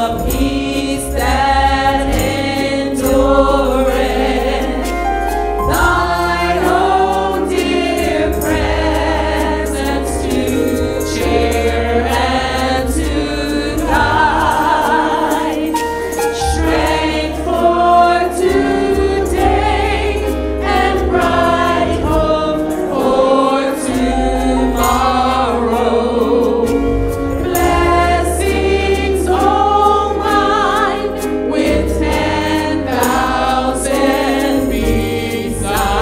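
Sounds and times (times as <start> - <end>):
group singing gospel song: 0.0 - 36.0
keyboard accompaniment: 0.0 - 36.0.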